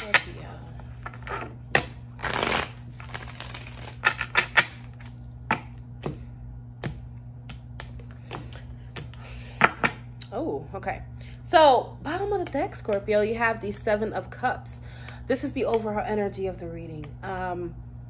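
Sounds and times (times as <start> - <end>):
cards being shuffled: 0.9 - 6.2
cards clicking and tapping on table: 6.8 - 10.0.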